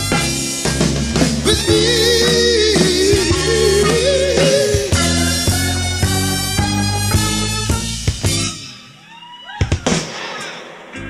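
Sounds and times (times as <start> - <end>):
audience cheering and whooping: 9.0 - 10.6
sharp cracks: 9.7 - 11.0.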